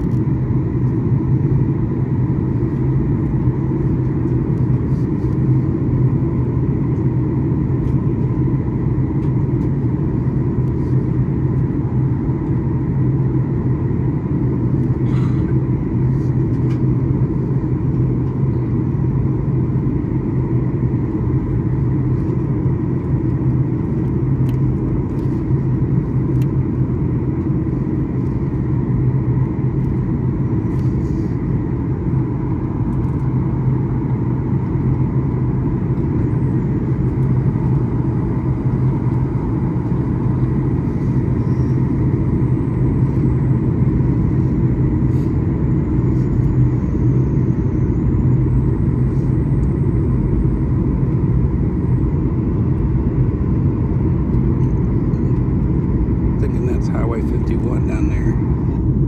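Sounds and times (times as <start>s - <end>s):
faint steady hum: 0.0s - 59.0s
jet engine cabin rumble: 0.0s - 59.0s.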